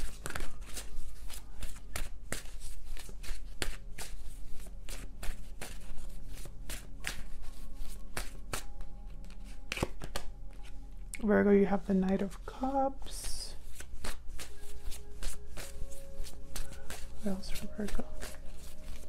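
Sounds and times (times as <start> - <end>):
cards riffling and snapping: 0.0 - 10.8, 13.6 - 19.0.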